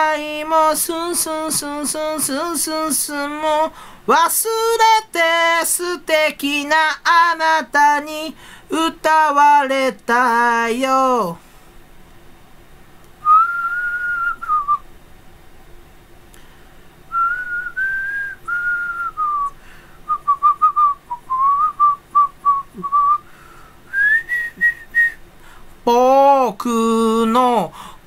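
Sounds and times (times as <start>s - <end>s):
faint steady hum: 0.0s - 28.0s
man whistling a tune: 13.2s - 14.8s, 17.1s - 23.3s, 23.9s - 25.2s.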